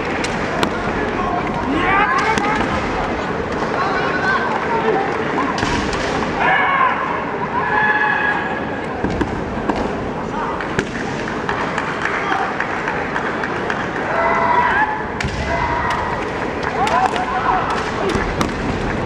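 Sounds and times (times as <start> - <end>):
crowd hum in gymnasium: 0.0 - 19.0
fencers shouting: 0.6 - 2.7, 6.3 - 8.8.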